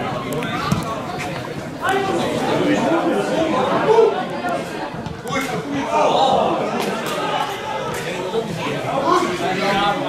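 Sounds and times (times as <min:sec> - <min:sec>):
indistinct chatter of spectators: 0:00.0 - 0:10.0.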